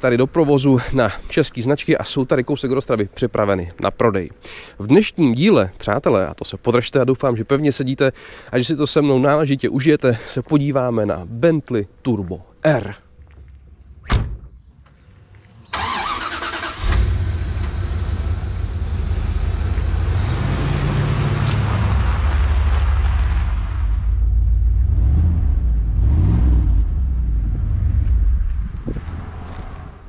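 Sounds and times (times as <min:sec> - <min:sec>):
car engine starting and revving: 0:15.7 - 0:30.0.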